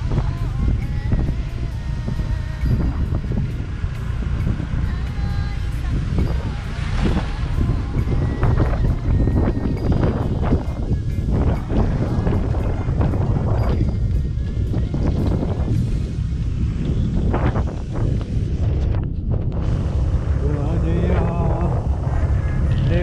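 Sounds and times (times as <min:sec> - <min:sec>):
motorbike engine: 0:00.0 - 0:23.0
road noise: 0:00.0 - 0:23.0
wind buffeting microphone: 0:00.0 - 0:23.0.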